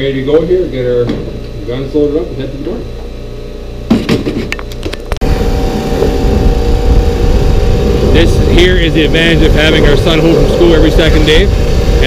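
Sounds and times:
pressure washer spraying: 0:07.2 - 0:12.0.

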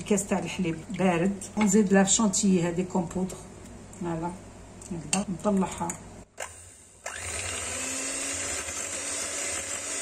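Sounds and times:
electric hand mixer running: 0:07.0 - 0:10.0.

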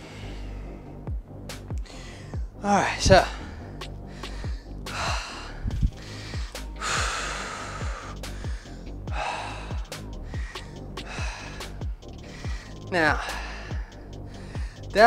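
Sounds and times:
man breathing hard and gasping: 0:00.0 - 0:01.1, 0:01.8 - 0:15.0
background music with steady beat: 0:00.0 - 0:15.0.

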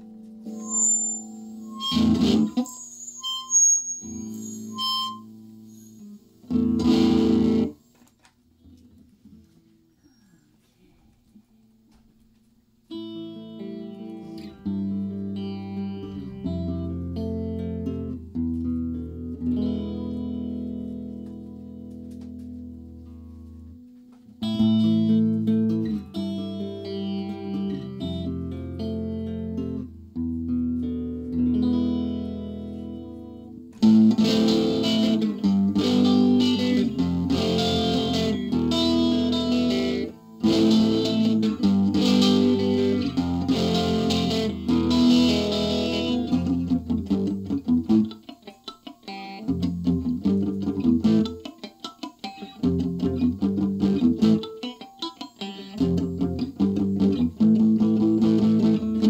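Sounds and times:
electric guitar through amplifier: 0:00.0 - 0:09.9, 0:11.9 - 0:59.0.

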